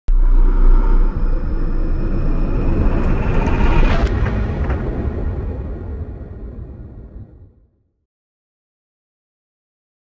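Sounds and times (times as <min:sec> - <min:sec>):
deep cinematic rumble: 0:00.1 - 0:08.0.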